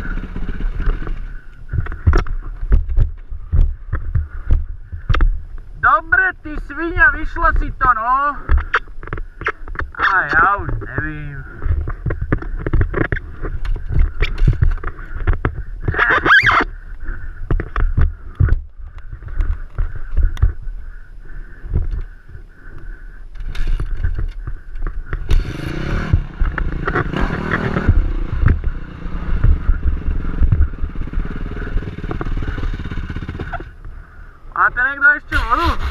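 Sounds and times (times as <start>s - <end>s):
dirt bike engine: 0.0s - 35.9s.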